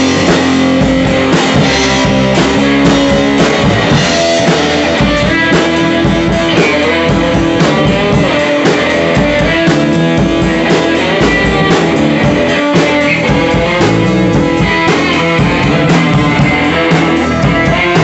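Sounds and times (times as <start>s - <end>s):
amplified electric guitar: 0.0s - 18.0s
drum kit beat: 0.0s - 18.0s.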